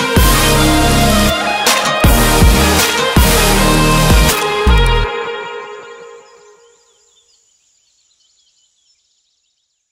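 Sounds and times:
music: 0.0 - 7.1
birds chirping and twittering: 5.8 - 9.9.

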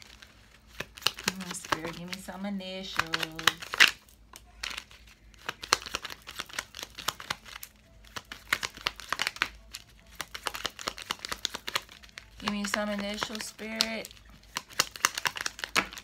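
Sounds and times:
paper cards shuffling: 0.0 - 16.0.

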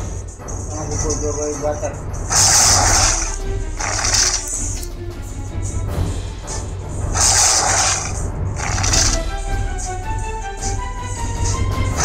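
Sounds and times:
game music with pulsing bass: 0.0 - 12.0.

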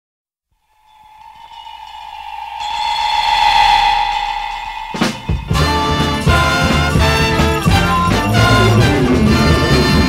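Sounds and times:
held musical tone: 0.7 - 10.0.

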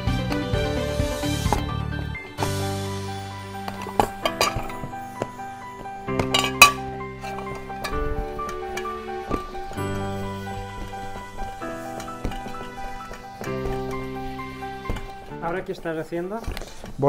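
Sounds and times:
background music: 0.0 - 17.0.

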